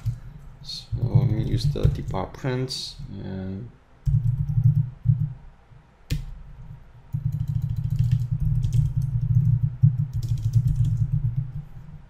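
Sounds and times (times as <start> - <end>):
computer keyboard typing: 1.0 - 2.2, 4.0 - 5.3, 7.1 - 12.0.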